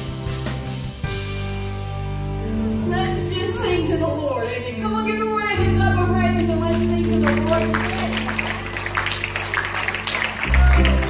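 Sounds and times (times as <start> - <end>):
worship band music: 0.0 - 11.0
held keyboard chord: 5.4 - 11.0.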